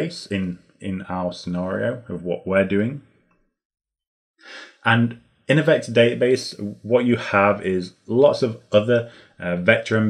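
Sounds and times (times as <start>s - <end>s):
man talking: 0.0s - 3.0s, 4.4s - 10.0s
man's in-breath: 4.4s - 4.8s, 9.1s - 9.4s.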